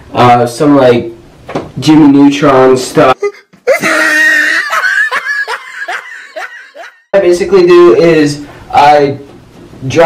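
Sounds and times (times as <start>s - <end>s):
person laughing: 3.1s - 7.1s.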